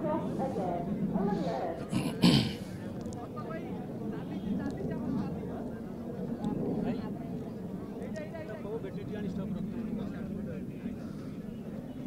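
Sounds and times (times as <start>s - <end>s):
people talking faintly: 0.0s - 12.0s.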